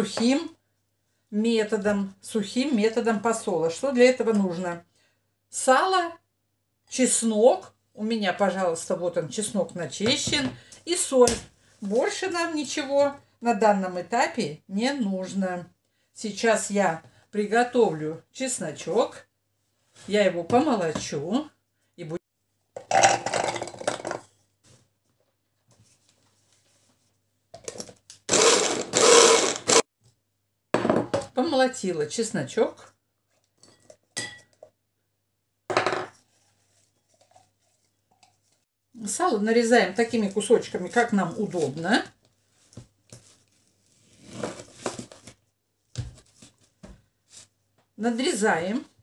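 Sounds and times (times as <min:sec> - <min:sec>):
blender chopper bursts: 0:28.3 - 0:29.8.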